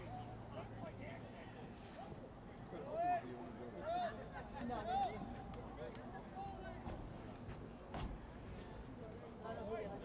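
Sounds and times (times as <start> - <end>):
open-air background noise: 0.0 - 10.0.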